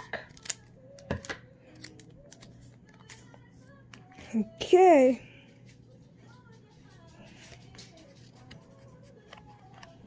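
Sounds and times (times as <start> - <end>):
scissors snipping foil: 0.0 - 3.2.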